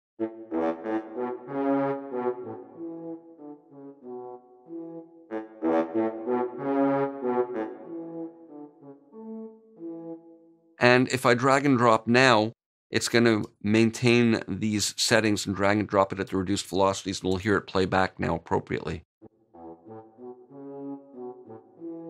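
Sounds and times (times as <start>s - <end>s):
french horns playing staccato: 0.2s - 10.2s, 19.5s - 22.0s.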